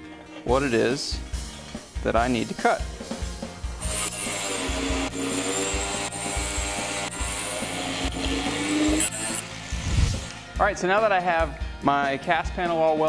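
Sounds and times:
angle grinder cutting metal: 3.8s - 10.4s.

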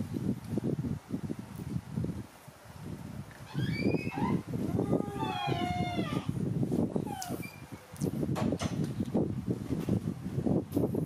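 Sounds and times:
monkeys squealing: 3.5s - 6.3s.

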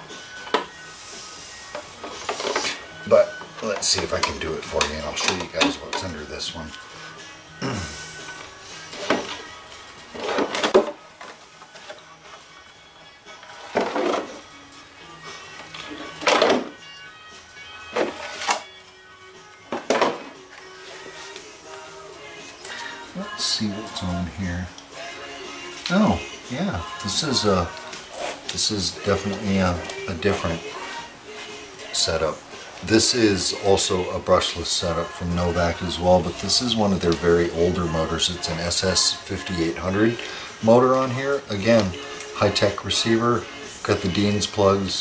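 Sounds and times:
background music: 0.0s - 45.0s
plastic rubbing hiss: 27.3s - 31.4s.

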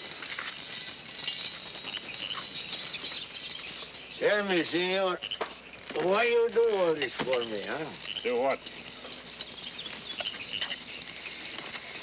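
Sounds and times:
faint bird chirps: 0.7s - 5.9s, 7.4s - 12.0s.

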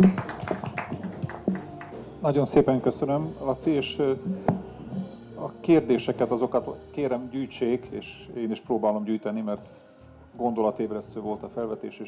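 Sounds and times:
sharp hand claps: 0.0s - 2.0s.

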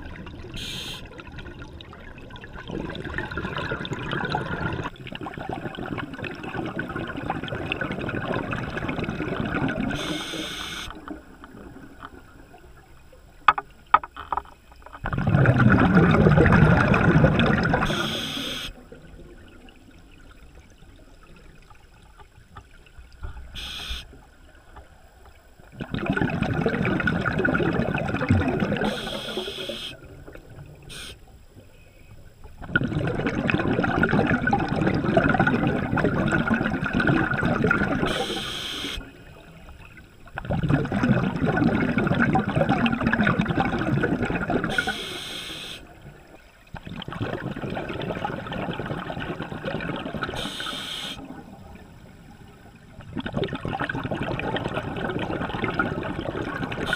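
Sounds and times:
bubbling exhalations underwater: 0.0s - 10.6s, 15.0s - 19.8s, 25.7s - 31.0s, 32.6s - 39.5s, 40.3s - 45.2s, 45.9s - 51.9s, 52.8s - 56.9s
hissing inhalations: 44.8s - 45.8s, 50.4s - 51.2s.

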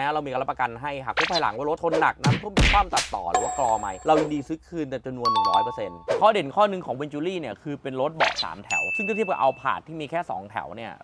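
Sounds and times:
man talking: 0.0s - 11.0s
bright ding sound effect: 3.4s - 4.5s, 5.3s - 6.2s, 8.7s - 9.5s.

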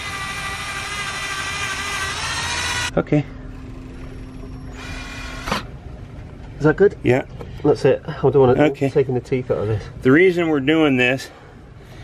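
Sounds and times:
cordless drill running: 0.0s - 2.9s, 4.8s - 5.6s.

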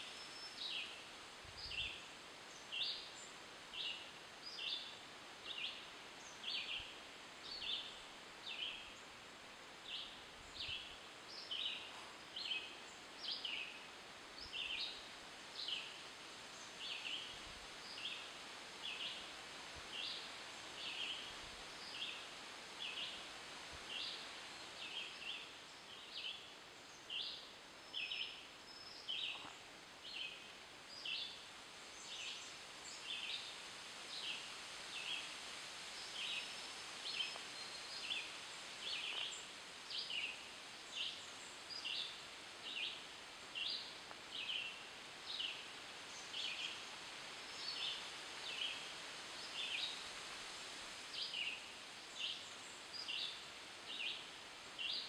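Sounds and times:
faint outdoor hiss: 0.0s - 55.0s.

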